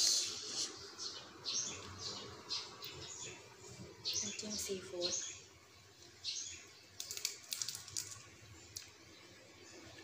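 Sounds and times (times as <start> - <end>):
wet clicking smacks of eating: 7.0 - 8.9.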